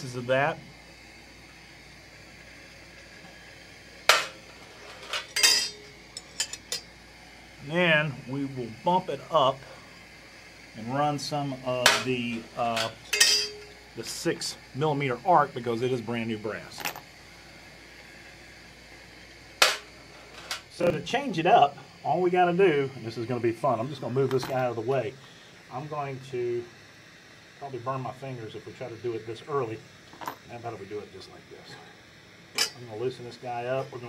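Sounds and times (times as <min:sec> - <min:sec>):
torch flame hissing: 0:00.0 - 0:34.0
sharp metallic clank: 0:04.1 - 0:06.9, 0:11.8 - 0:13.7, 0:19.6 - 0:20.7, 0:32.6 - 0:32.9
brass cartridge cases clinking on metal: 0:05.0 - 0:06.9, 0:12.8 - 0:13.7.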